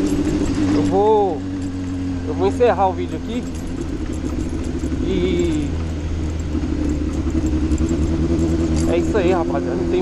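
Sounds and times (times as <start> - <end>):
motorcycle engine cruising: 0.0 - 10.0
man's voice: 5.0 - 5.8.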